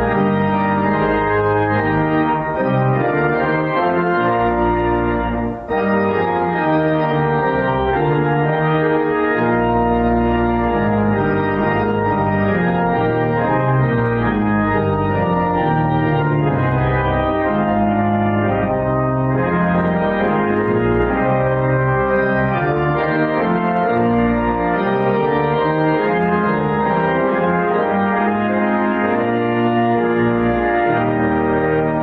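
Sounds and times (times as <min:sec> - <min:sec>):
church organ playing hymn: 0:00.0 - 0:32.0.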